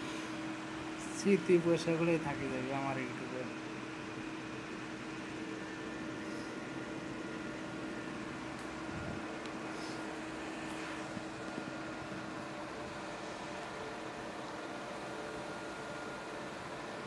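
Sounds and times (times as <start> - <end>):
room hum and hiss: 0.0 - 17.0.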